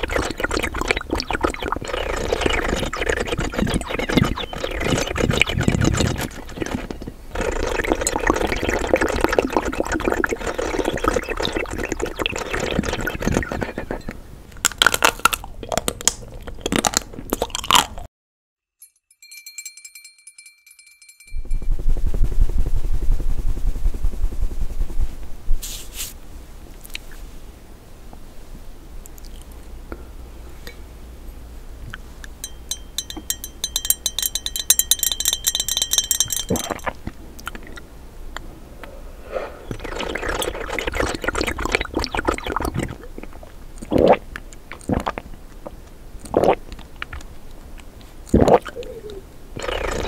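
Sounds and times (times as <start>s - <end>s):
noisy sound: 0.0s - 15.2s, 21.3s - 29.0s.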